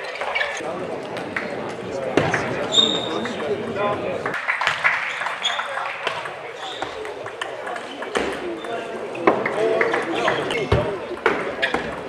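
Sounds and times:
murmur of voices: 0:00.0 - 0:12.0.

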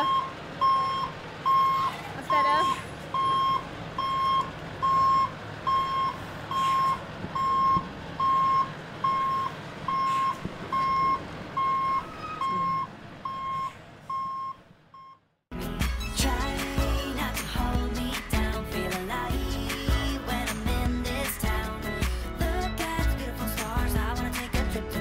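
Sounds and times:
reversing alarm beeping: 0:00.0 - 0:15.2
lorry engine: 0:00.0 - 0:25.0.

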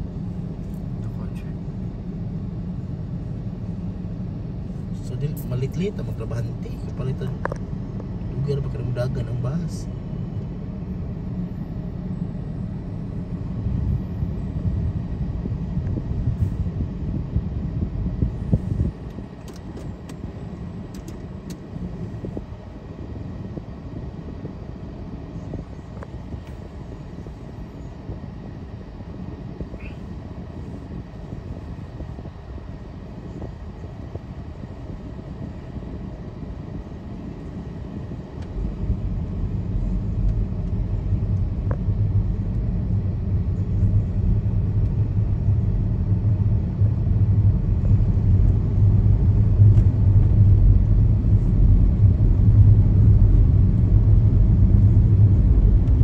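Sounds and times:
vehicle road and engine rumble: 0:00.0 - 0:56.0.

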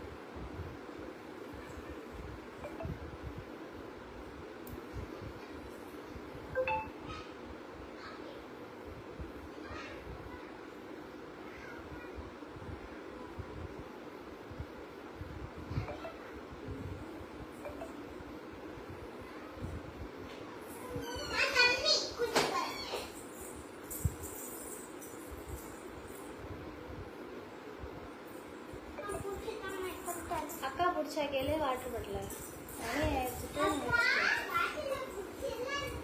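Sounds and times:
low background hum: 0:00.0 - 0:36.0
faint tinkles: 0:28.4 - 0:30.8.

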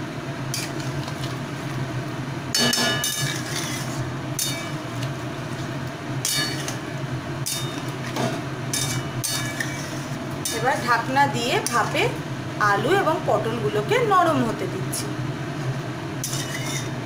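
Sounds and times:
metal spatula scraping a wok: 0:02.6 - 0:04.8, 0:08.7 - 0:10.8, 0:16.2 - 0:17.0.

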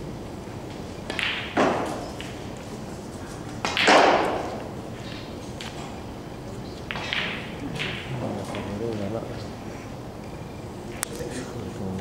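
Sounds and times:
cue hitting snooker ball: 0:01.0 - 0:02.6, 0:03.5 - 0:05.8, 0:06.9 - 0:09.0.

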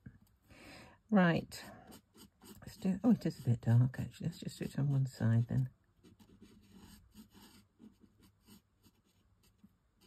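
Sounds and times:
marker scratching on cardstock: 0:06.0 - 0:09.6.

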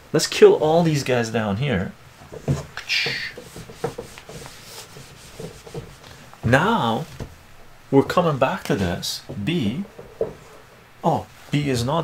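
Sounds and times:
eraser rubbing on whiteboard: 0:02.8 - 0:06.2.

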